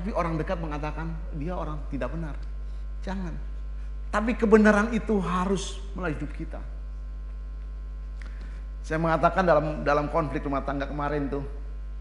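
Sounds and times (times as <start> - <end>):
low electrical mains hum: 0.0 - 12.0
man speaking: 4.2 - 6.8.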